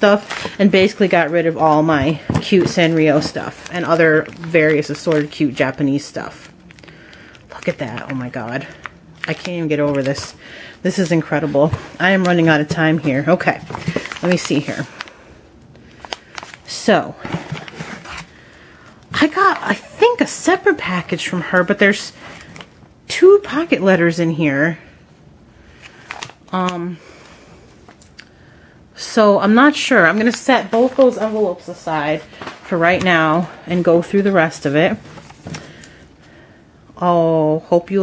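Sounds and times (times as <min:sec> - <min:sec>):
paper envelopes rustling: 0:00.0 - 0:15.2, 0:15.9 - 0:18.6, 0:25.7 - 0:26.5, 0:29.8 - 0:36.0.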